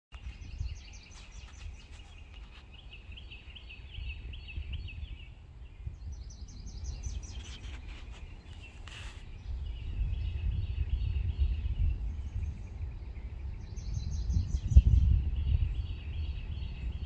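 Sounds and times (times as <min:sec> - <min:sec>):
songbirds chirping: 0:00.1 - 0:17.0.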